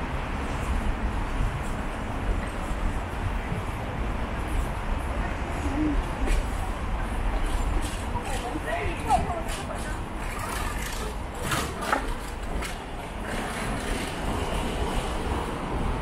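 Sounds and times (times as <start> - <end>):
road traffic rumble: 0.0 - 16.0.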